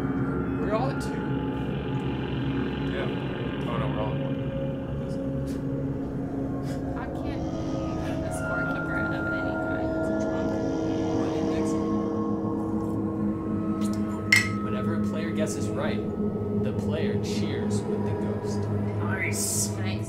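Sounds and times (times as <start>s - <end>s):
slow ambient music: 0.0s - 20.0s
drinking glasses clinking: 14.3s - 14.7s.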